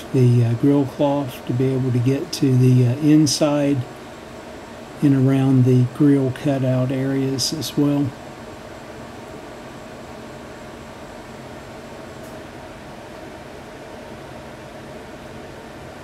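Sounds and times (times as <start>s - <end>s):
background hum and hiss: 0.0s - 16.0s
faint constant tone: 0.0s - 16.0s.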